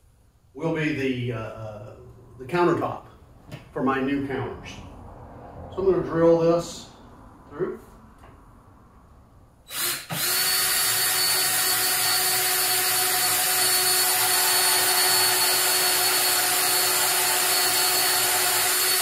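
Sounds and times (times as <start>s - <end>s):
cordless drill boring wood: 9.7s - 19.0s.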